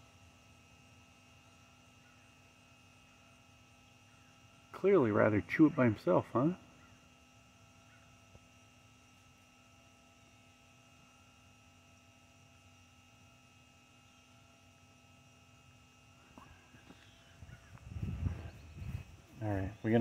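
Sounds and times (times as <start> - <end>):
faint outdoor hum: 0.0 - 20.0.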